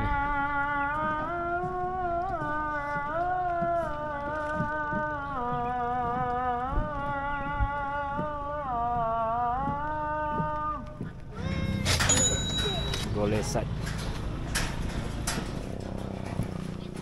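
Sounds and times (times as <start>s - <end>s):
voices outdoors: 2.6s - 17.0s.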